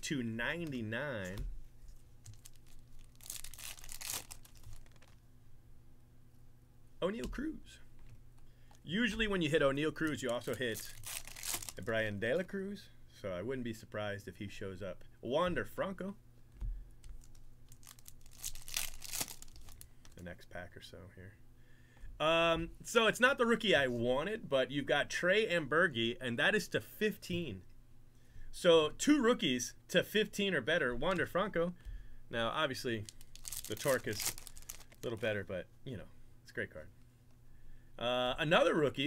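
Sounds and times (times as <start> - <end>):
foil wrapper tearing and crinkling: 2.2 - 5.2, 10.0 - 12.0, 17.2 - 19.9, 33.0 - 35.2.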